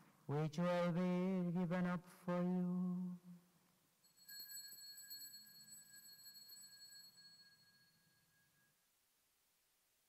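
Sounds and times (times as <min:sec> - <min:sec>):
altar bell ringing: 0:04.0 - 0:08.9.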